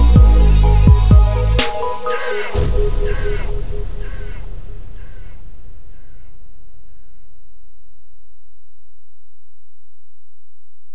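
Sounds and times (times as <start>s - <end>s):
low rumble: 2.6s - 8.1s.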